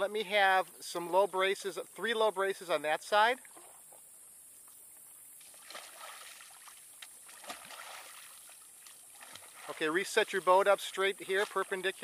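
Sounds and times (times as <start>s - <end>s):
water trickling: 0.0s - 12.0s
paddle slapping water: 3.4s - 12.0s
soft splashes: 3.4s - 12.0s.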